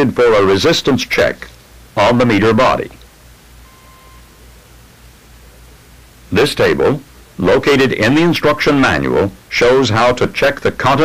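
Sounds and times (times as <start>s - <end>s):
recording hiss and mains hum: 0.0s - 11.0s
short thin steady tone: 3.6s - 4.4s.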